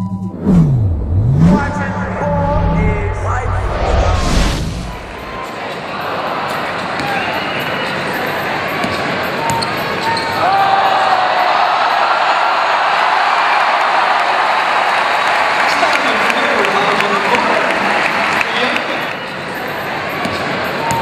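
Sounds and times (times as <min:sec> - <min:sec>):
crowd voices: 0:01.0 - 0:11.9.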